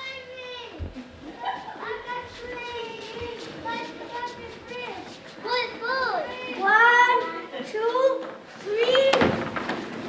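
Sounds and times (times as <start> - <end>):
children calling out: 0.0 - 9.4.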